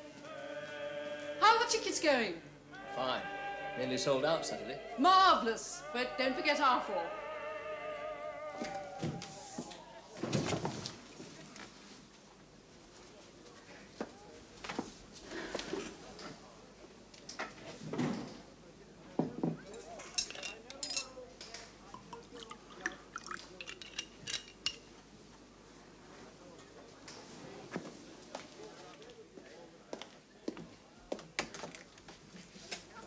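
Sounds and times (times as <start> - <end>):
glass and bottle clinking: 19.7 - 21.1, 21.9 - 24.9
drink pouring: 21.8 - 24.2.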